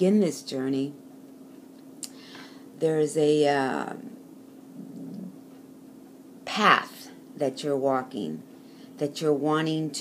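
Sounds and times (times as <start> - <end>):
faint steady hum: 0.0 - 10.0
woman humming mmm: 4.8 - 5.4.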